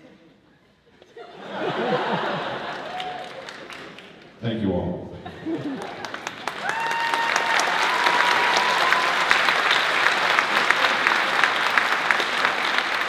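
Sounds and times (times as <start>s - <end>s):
audience applauding: 1.4s - 4.4s, 5.5s - 13.0s
high-pitched whoop: 6.6s - 9.4s.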